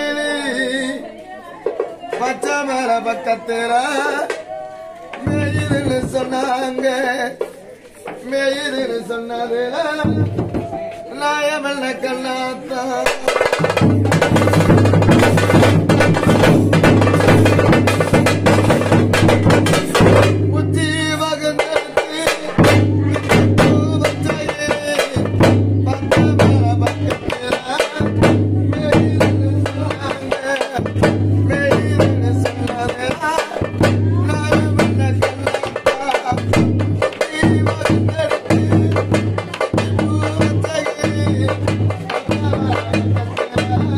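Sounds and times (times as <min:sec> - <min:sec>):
man singing folk song: 0:00.0 - 0:14.2, 0:17.5 - 0:43.9
frame drums beating: 0:03.8 - 0:08.2, 0:10.0 - 0:11.2, 0:13.0 - 0:43.9
bass drum beating: 0:05.2 - 0:06.5, 0:10.0 - 0:11.0, 0:13.3 - 0:43.9.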